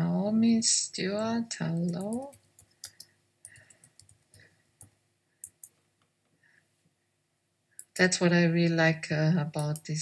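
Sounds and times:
faint computer clicking: 0:01.6 - 0:06.4, 0:07.8 - 0:08.1, 0:09.6 - 0:10.0.

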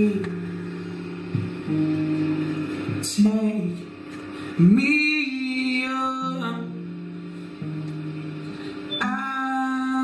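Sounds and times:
person singing: 0:00.0 - 0:00.8, 0:01.7 - 0:10.0
acoustic guitar chords: 0:00.0 - 0:10.0.

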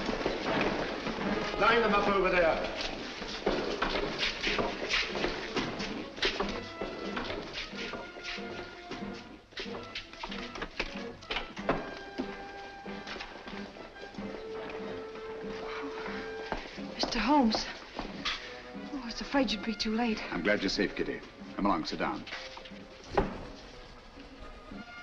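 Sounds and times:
old film music with held notes: 0:00.0 - 0:25.0.

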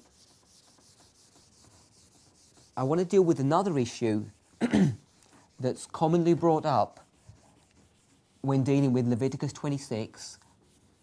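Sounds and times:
marker pen scratching on whiteboard: 0:00.0 - 0:11.0.

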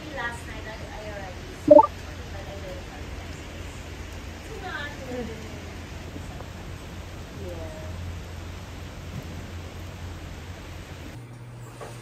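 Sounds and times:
heavy rain falling: 0:02.0 - 0:11.2.

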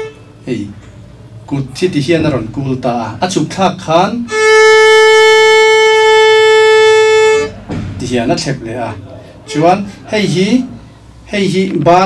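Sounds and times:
violin long bowed note: 0:00.0 - 0:00.4, 0:04.2 - 0:07.6, 0:09.4 - 0:10.7.

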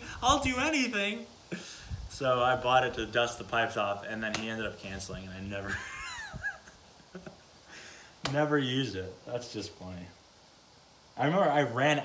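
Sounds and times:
man laughing: 0:05.6 - 0:07.9.

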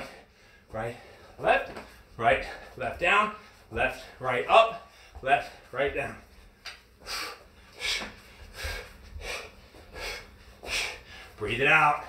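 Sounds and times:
forceful exhalations: 0:07.0 - 0:11.4.

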